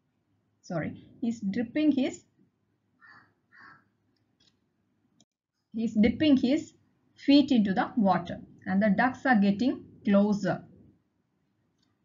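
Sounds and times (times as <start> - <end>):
woman reading aloud: 0.7 - 2.2, 5.8 - 10.6.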